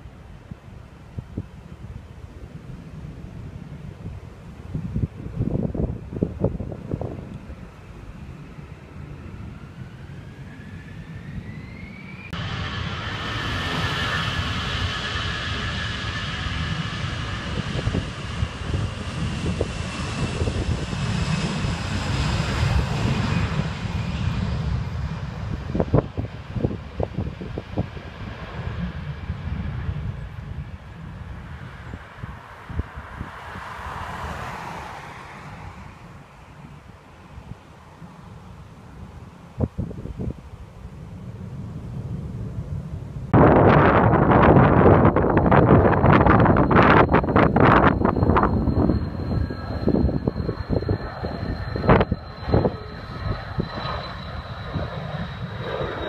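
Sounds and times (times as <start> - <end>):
wind buffeting microphone: 0.0 - 34.3, 39.0 - 56.0
jet airliner engine roar: 0.0 - 56.0.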